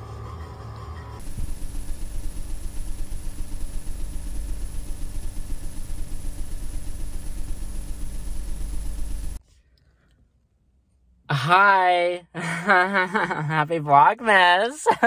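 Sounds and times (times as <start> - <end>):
fluttering low rumble: 1.2 - 9.4.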